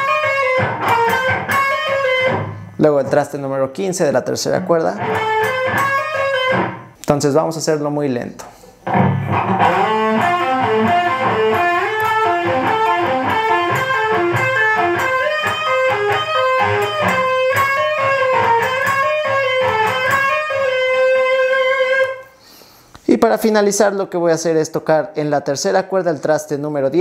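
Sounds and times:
electric guitar lead line: 0.0 - 3.2, 4.2 - 7.0, 8.8 - 22.3.

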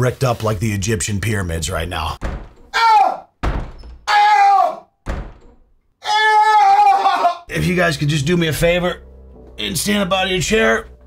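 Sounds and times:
door slamming shut: 2.2 - 4.2, 5.0 - 5.8
man yelping in pain: 4.1 - 4.8, 6.0 - 7.5.

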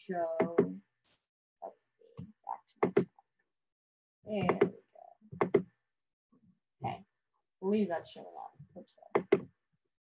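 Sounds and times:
person speaking: 4.3 - 5.1.

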